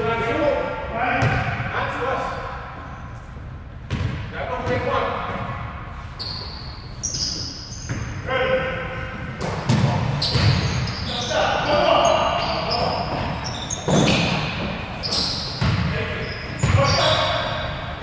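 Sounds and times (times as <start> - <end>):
players calling out: 9.9 - 18.0.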